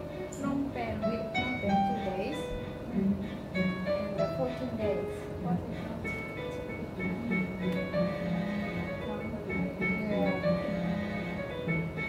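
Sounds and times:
melody of held notes: 0.0 - 12.0.

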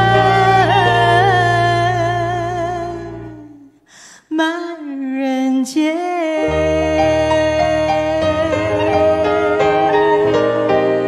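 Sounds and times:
musical accompaniment: 0.0 - 3.7, 6.4 - 11.0
woman singing with vibrato: 0.0 - 11.0.

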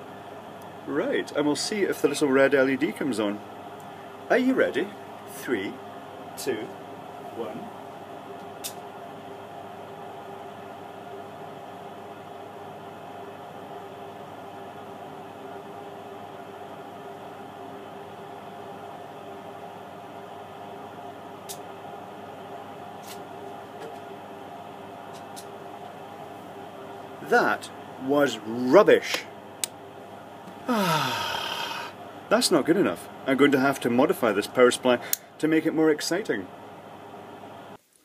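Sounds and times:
washing machine spinning hum: 0.0 - 38.0.

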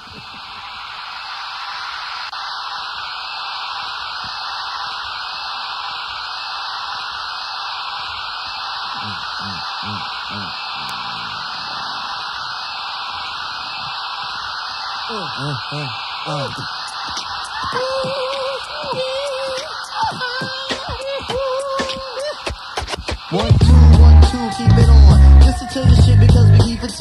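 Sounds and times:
filtered synthesized white noise: 0.0 - 27.0.

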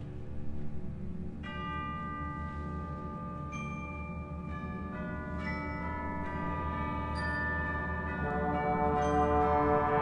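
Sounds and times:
tubular bell ringing: 1.4 - 10.0
orchestra sustaining low chords: 6.6 - 10.0.

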